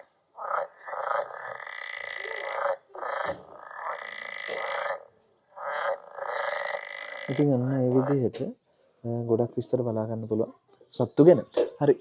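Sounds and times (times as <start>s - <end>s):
frog croaking: 0.0s - 8.3s.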